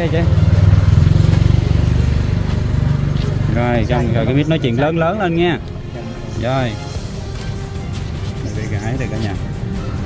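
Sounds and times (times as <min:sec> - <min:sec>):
motorcycle engine running: 0:00.0 - 0:10.0.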